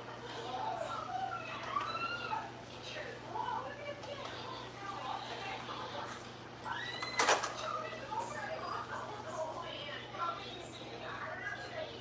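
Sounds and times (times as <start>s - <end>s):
faint talk: 0.0s - 12.0s.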